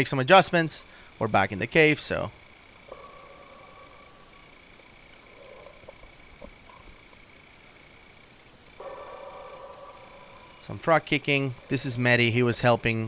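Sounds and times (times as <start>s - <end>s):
muffled underwater hum: 0.8s - 13.0s.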